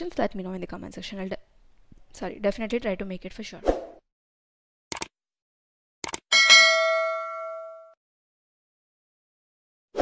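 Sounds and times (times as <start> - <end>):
notification bell ding: 6.3 - 8.0.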